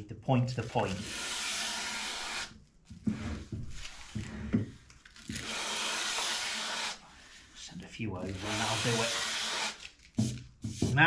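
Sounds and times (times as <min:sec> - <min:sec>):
sandpaper rubbing on wood: 0:00.9 - 0:02.5, 0:05.4 - 0:07.0, 0:08.2 - 0:11.0.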